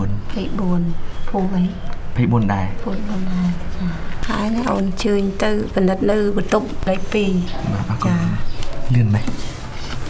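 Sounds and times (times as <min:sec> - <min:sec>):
people talking: 0:00.0 - 0:09.4.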